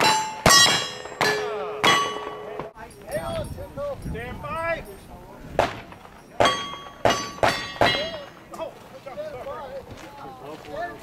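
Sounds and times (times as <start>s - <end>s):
steel target pinging: 0.0s - 2.8s, 5.6s - 8.3s.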